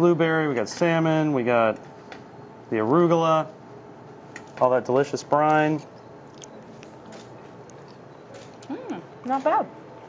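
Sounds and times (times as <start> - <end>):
faint chewing: 5.8 - 8.7.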